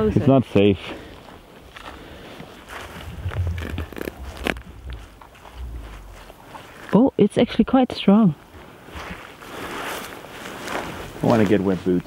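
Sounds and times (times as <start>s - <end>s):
footsteps on grass and ice: 0.2s - 12.0s
wind rumble on microphone: 2.8s - 6.4s.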